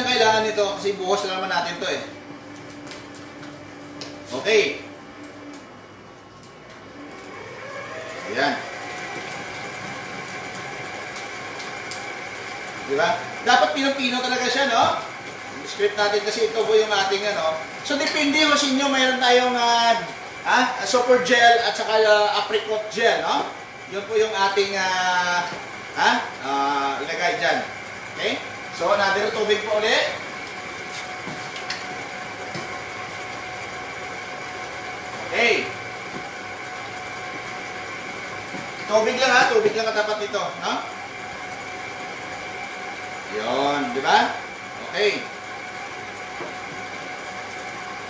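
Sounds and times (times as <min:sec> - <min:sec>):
background hum and hiss: 0:00.0 - 0:48.0
constant high whine: 0:00.0 - 0:48.0.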